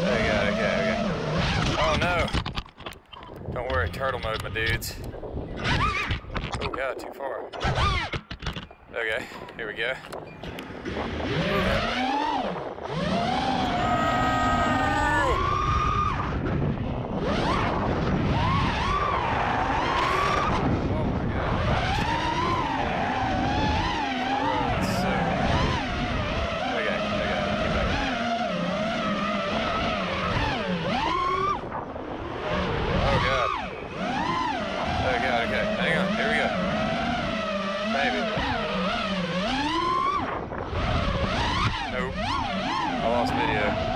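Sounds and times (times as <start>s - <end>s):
quadcopter motors whining: 0.0s - 2.4s, 7.6s - 43.9s.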